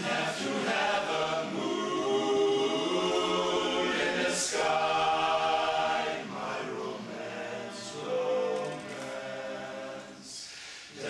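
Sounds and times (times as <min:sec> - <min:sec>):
men's chorus singing a cappella: 0:00.0 - 0:11.0.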